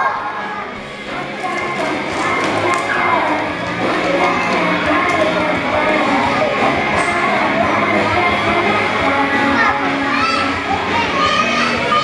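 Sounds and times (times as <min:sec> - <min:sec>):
young children talking and calling out: 0:00.0 - 0:12.0.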